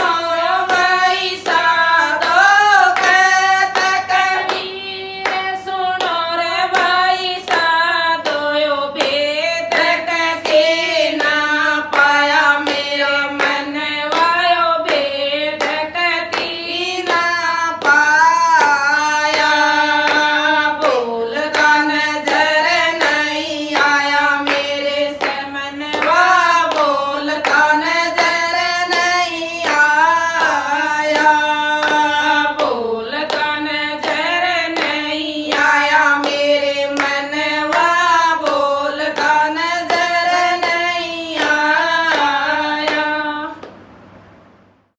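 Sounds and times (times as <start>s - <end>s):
hand clapping: 0.0s - 43.8s
women singing devotional song: 0.0s - 43.8s.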